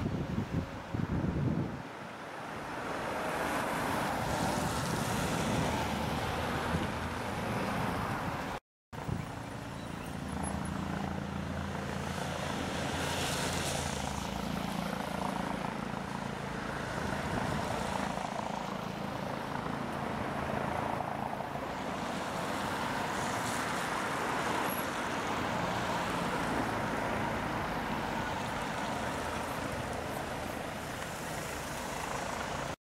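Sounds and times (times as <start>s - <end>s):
helicopter rotor and turbine drone: 9.0s - 24.4s, 27.6s - 32.8s.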